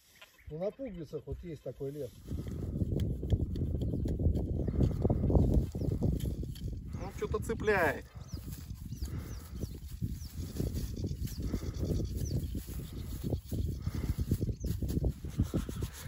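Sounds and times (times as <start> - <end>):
hands tearing soil and turf: 15.2 - 16.0.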